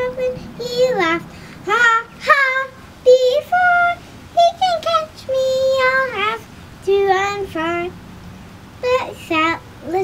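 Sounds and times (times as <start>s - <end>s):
girl singing: 0.0s - 8.0s, 8.8s - 10.0s.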